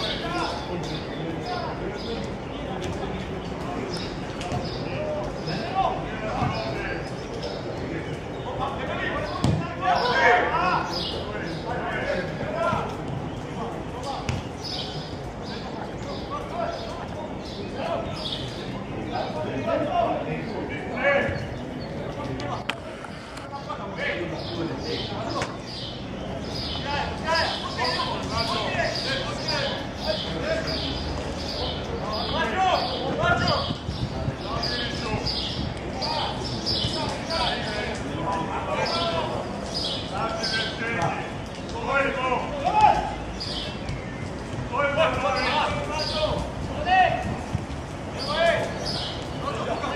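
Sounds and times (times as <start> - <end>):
players shouting: 0.0 - 7.1, 7.8 - 22.6, 26.8 - 43.9, 44.5 - 49.9
football kicked on grass: 9.4 - 9.6.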